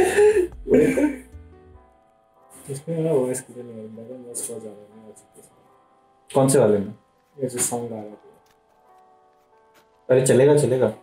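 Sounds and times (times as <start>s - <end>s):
breathy vocal sounds: 0.0s - 1.3s
men laughing: 0.0s - 1.3s
faint background music: 0.0s - 11.0s.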